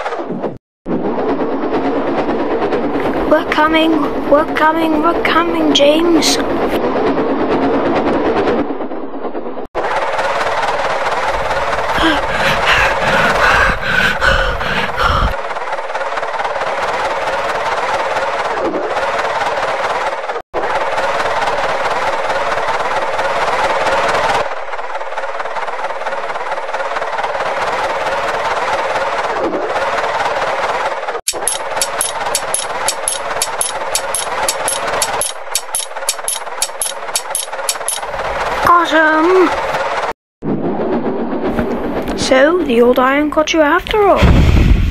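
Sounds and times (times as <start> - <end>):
sharp locomotive chuffs: 0.9 - 42.7.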